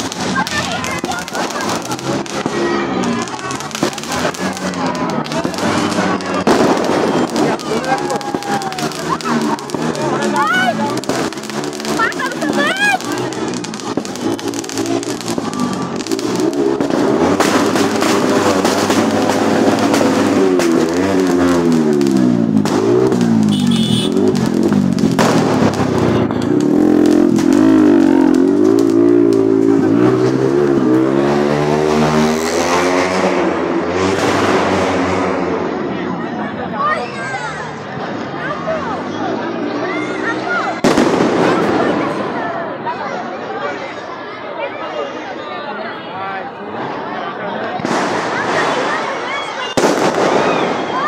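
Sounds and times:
fireworks crackling: 0.0s - 44.5s, 45.1s - 51.0s.

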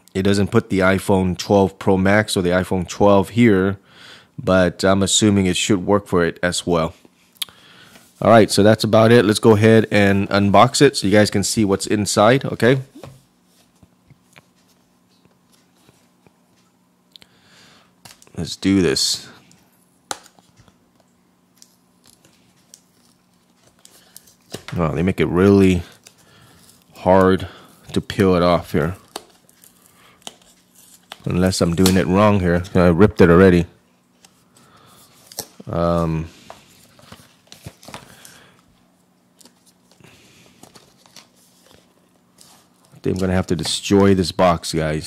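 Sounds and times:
faint steady hum: 0.0s - 45.0s.

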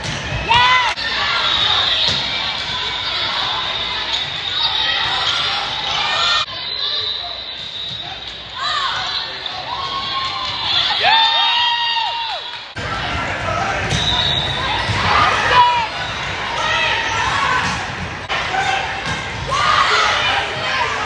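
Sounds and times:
murmur of players and spectators: 0.0s - 21.0s.

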